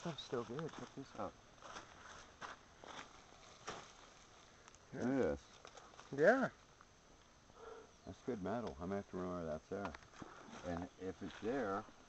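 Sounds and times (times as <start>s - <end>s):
faint ticks or rustles: 0.0s - 12.0s.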